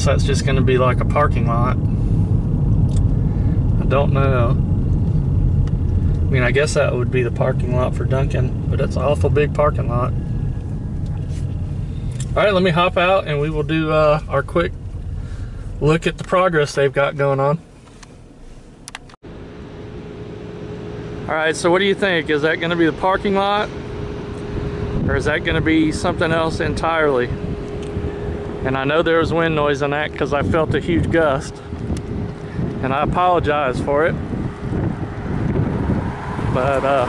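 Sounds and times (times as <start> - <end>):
wind buffeting microphone: 22.6 - 37.0.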